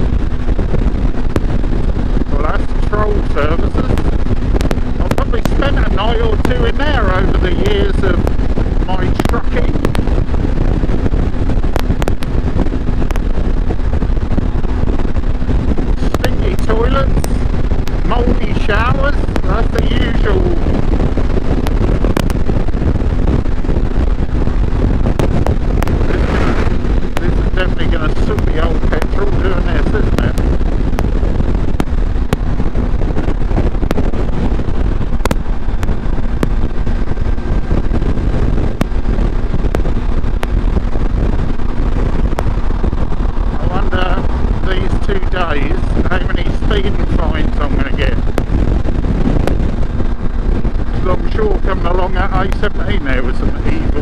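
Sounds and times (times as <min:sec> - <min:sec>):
motorcycle engine cruising: 0:00.0 - 0:54.0
wind noise on microphone: 0:00.0 - 0:54.0.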